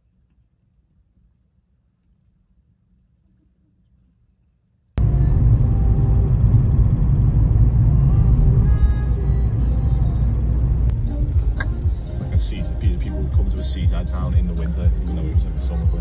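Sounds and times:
low road rumble inside car: 5.0s - 16.0s
faint music: 8.0s - 16.0s.

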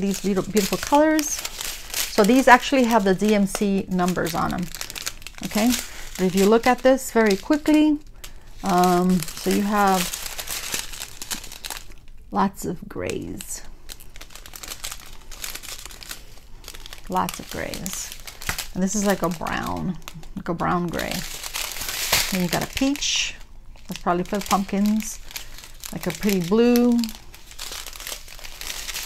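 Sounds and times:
plastic bags crinkling: 0.0s - 29.0s.

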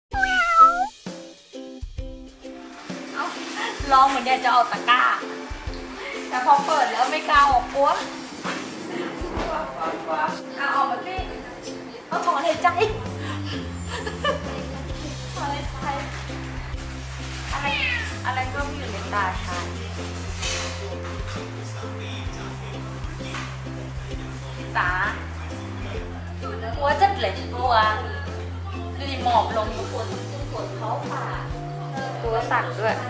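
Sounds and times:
cat meowing: 0.1s - 0.9s, 17.5s - 18.3s
background music with low bass: 0.2s - 33.0s
intro jingle with drum beat: 0.8s - 2.7s.

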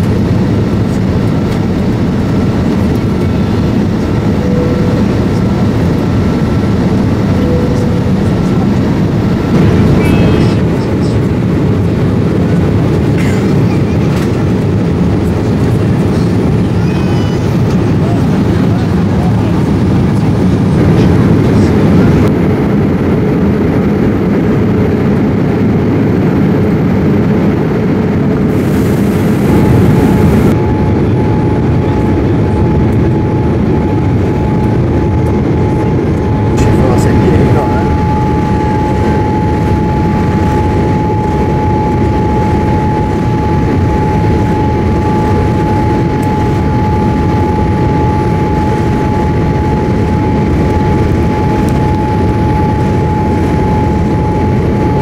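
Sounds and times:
airliner cabin engine rush: 0.0s - 55.0s
steady mid-pitched whine: 0.0s - 55.0s.

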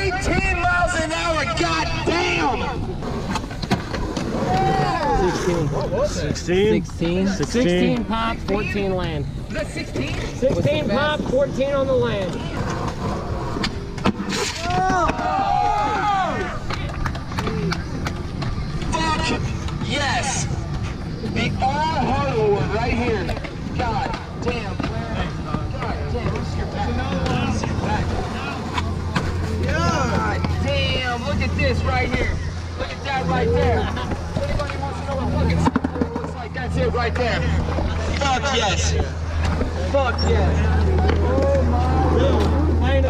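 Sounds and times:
people calling out and chatting: 0.0s - 43.0s
skateboard clacks on concrete: 16.4s - 20.0s.

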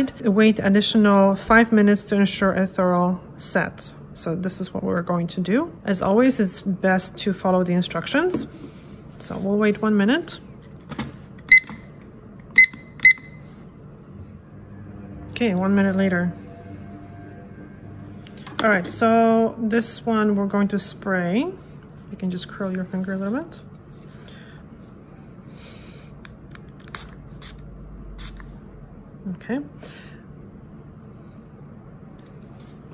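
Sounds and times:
kitchen timer beeping: 11.5s - 11.9s, 12.6s - 13.4s.

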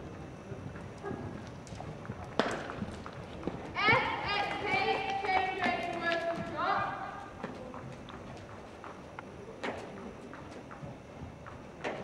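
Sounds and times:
horse hoofbeats on sand: 0.6s - 12.0s.

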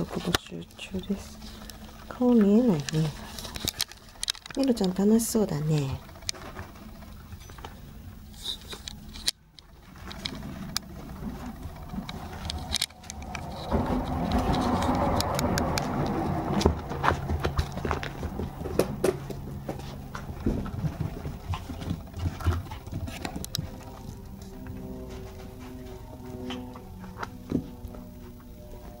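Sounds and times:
puppy chewing metal brush: 0.0s - 28.8s
paws pattering on carpet: 15.8s - 29.0s.

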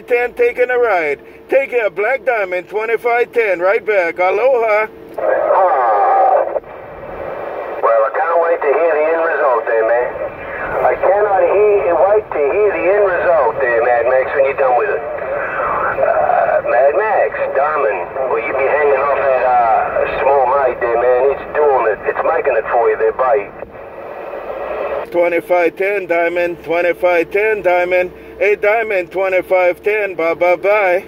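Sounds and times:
voices over radio speaker: 0.0s - 31.0s.

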